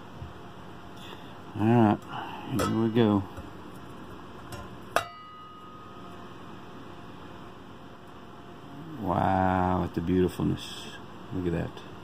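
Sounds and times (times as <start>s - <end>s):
metal cover clinking: 2.5s - 3.2s.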